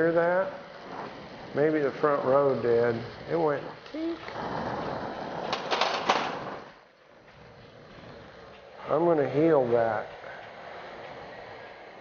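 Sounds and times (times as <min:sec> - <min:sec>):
torch flame hissing: 0:00.0 - 0:12.0.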